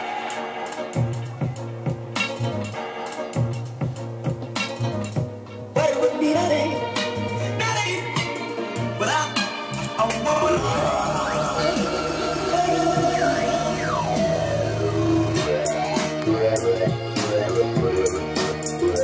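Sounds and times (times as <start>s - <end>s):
electronic dance music: 7.4s - 19.0s.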